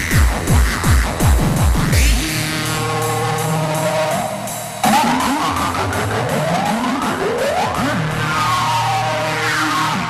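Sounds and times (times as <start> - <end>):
hardcore electronic dance music: 0.0 - 10.0.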